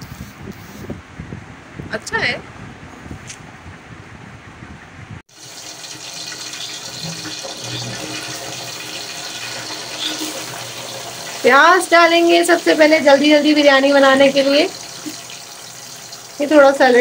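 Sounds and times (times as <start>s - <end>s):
oil sizzling in a pot: 5.3s - 17.0s.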